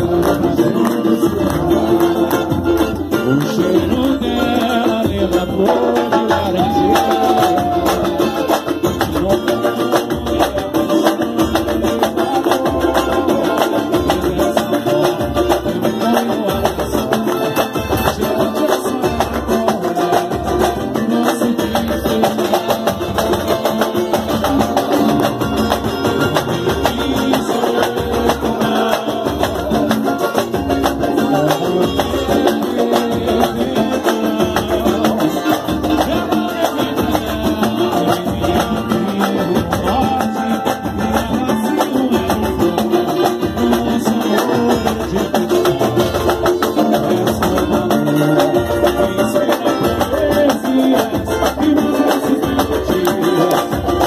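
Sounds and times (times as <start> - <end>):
cavaquinho strumming: 0.0 - 54.0
samba percussion: 0.0 - 54.0.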